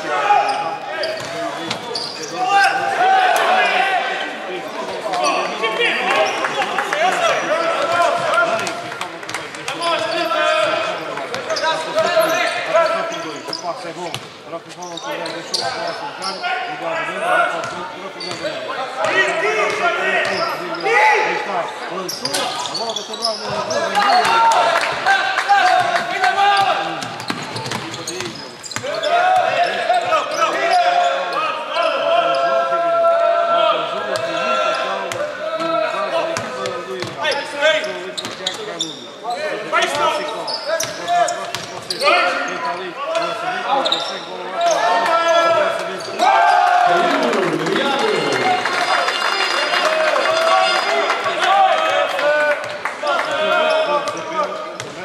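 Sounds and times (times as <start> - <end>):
voices calling out: 40.0 - 51.3.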